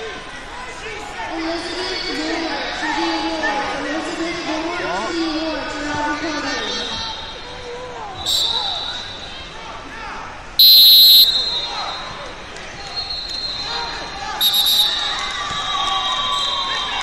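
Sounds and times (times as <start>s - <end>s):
shouting voices echoing in a hall: 0.0s - 17.0s
referee's whistle blowing: 8.2s - 9.5s, 10.6s - 12.2s, 12.8s - 17.0s.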